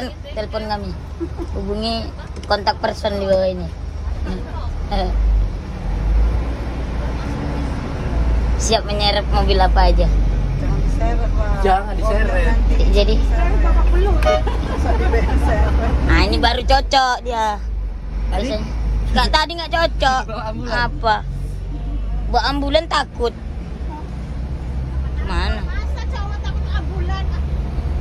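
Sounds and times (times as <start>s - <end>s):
people talking: 0.0s - 5.2s, 8.6s - 17.6s, 18.3s - 24.1s, 24.9s - 27.6s
bus engine rumble: 0.0s - 28.0s.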